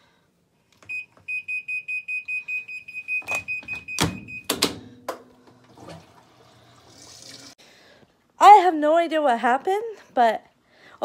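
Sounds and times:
washing machine beeps: 0:00.9 - 0:05.0
washing machine clunks: 0:03.3 - 0:06.1.

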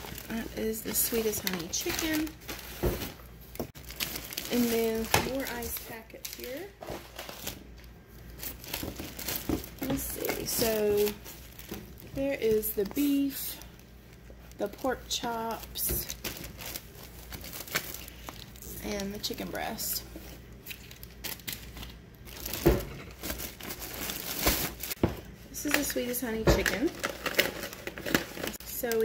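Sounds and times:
plastic liner crinkling: 0:00.0 - 0:25.0, 0:25.6 - 0:29.0.

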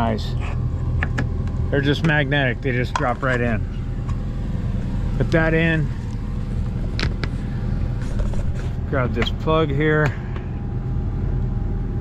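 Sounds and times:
low motor hum: 0:00.0 - 0:12.0.

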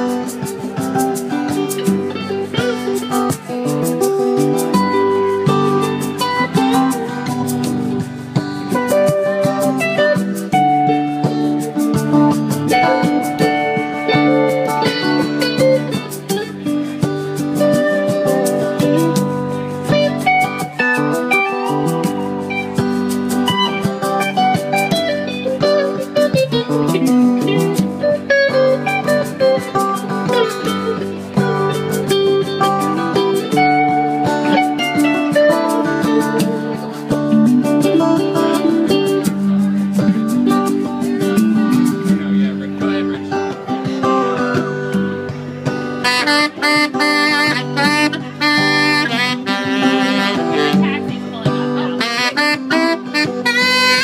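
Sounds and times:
electric guitar lead: 0:00.0 - 0:54.0
hand-drum percussion: 0:00.0 - 0:54.0
strummed guitar: 0:00.0 - 0:54.0.

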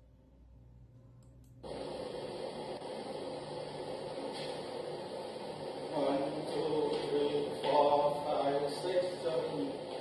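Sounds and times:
low hum: 0:00.0 - 0:10.0
steady hiss: 0:01.6 - 0:10.0.

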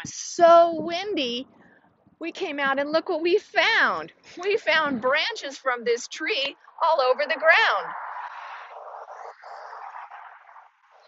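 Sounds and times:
faint outdoor background hiss: 0:00.0 - 0:11.0.

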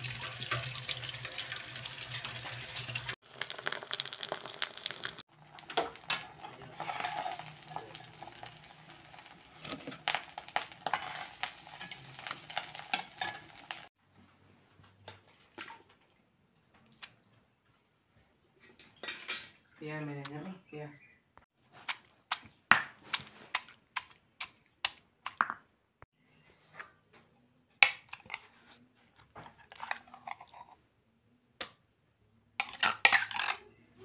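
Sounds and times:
eggs sizzling in oil: 0:00.0 - 0:14.0
utensil clinking on pan: 0:10.0 - 0:13.8.

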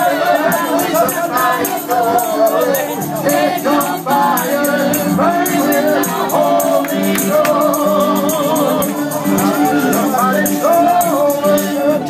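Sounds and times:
congregation singing gospel: 0:00.0 - 0:12.0
shaken hand percussion: 0:00.0 - 0:12.0.

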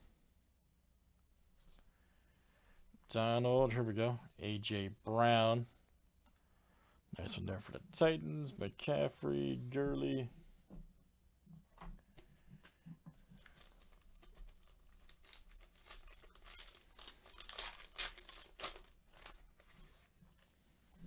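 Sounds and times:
foil wrapper crinkling and tearing: 0:13.3 - 0:20.5.

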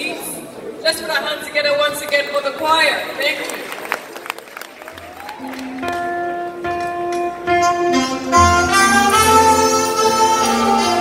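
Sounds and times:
saxophone holding long notes: 0:05.4 - 0:11.0.

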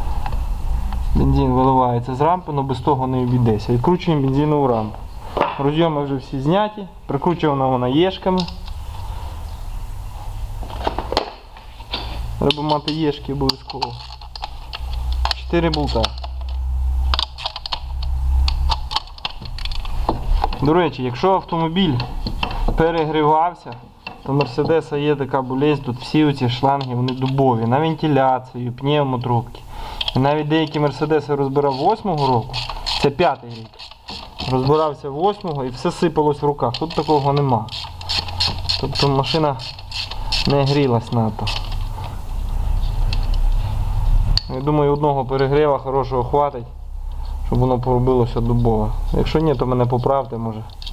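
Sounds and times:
steady low rumble: 0:00.0 - 0:23.2, 0:40.2 - 0:50.6
low steady hum: 0:00.0 - 0:50.9
hand ratchet clicking: 0:12.4 - 0:19.9, 0:30.0 - 0:35.6, 0:36.6 - 0:41.9.

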